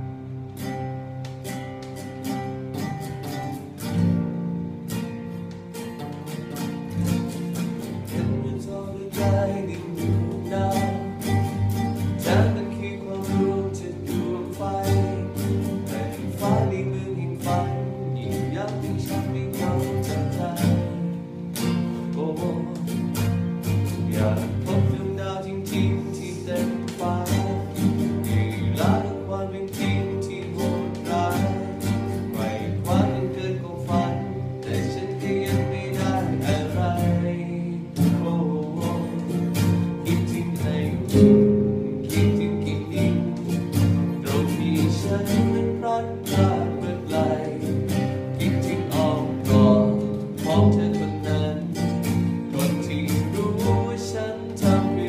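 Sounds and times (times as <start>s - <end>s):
classical guitar fingerstyle: 0.0s - 55.0s.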